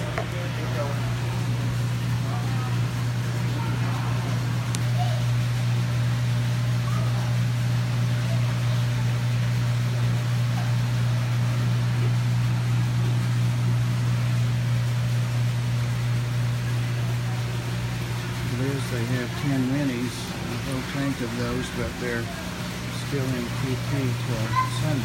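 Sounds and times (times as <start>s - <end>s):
low machinery hum: 0.0s - 25.0s.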